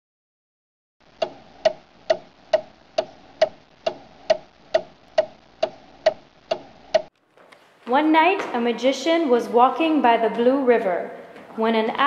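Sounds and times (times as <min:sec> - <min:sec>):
clock ticking: 0:01.1 - 0:07.1.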